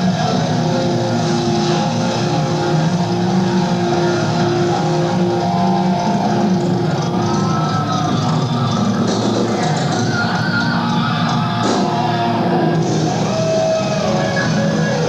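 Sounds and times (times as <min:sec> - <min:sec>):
distorted electric guitar chords: 0:00.0 - 0:15.0.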